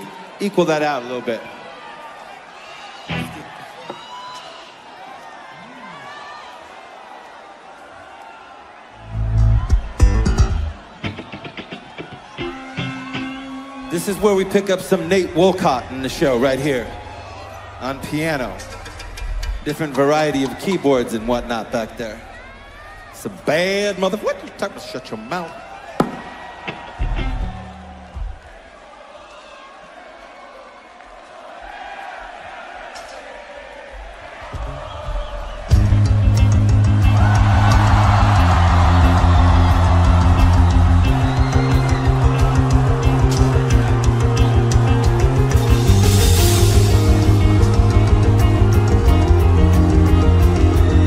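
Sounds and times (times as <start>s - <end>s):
low bass notes through pa: 35.7s - 51.0s.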